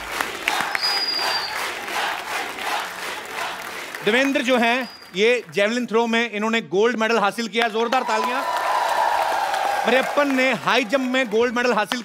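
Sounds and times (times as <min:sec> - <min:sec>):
studio audience applauding: 0:00.0 - 0:06.1, 0:07.6 - 0:12.0.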